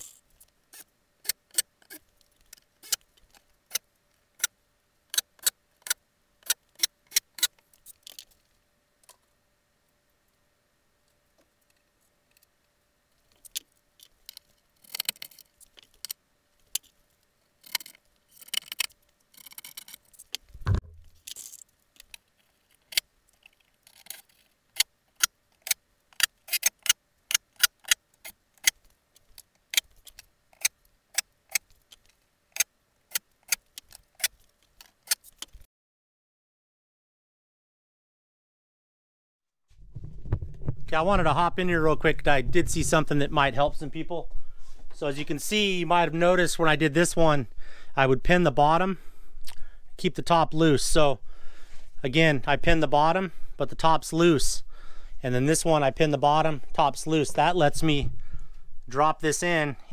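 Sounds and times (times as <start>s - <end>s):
dull thump: 20.6s - 21.1s.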